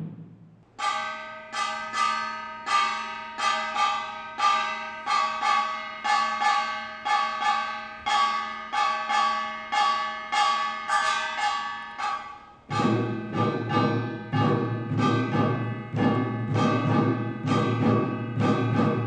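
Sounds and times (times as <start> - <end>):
gong struck rhythmically: 0.0 - 19.0.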